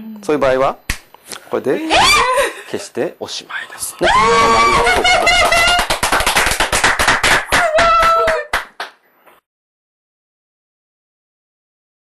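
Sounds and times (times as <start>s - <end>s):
audience applauding: 4.1s - 9.0s.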